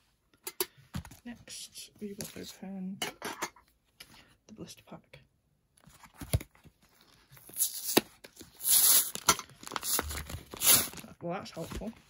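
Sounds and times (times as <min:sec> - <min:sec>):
cardboard ripping: 0:07.5 - 0:11.1.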